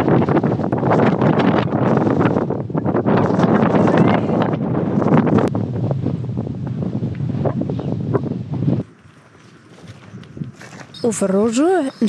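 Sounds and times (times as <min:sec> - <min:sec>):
quiet outdoor background: 0:00.0 - 0:12.0
wind buffeting microphone: 0:00.0 - 0:12.0.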